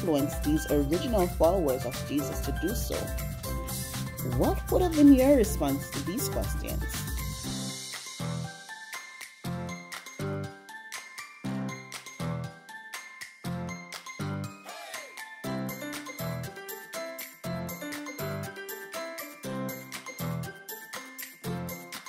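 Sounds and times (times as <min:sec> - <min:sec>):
upbeat instrumental music: 0:00.0 - 0:22.0.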